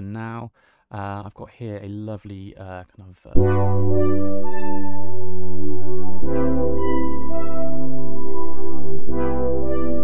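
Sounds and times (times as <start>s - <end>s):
held synth bass note: 3.4s - 10.0s
sustained synth chords: 3.4s - 10.0s.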